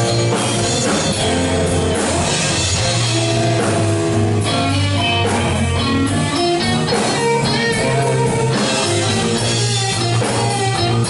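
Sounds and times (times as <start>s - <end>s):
blues-rock band playing: 0.0s - 11.0s
electric guitar lead: 0.0s - 11.0s.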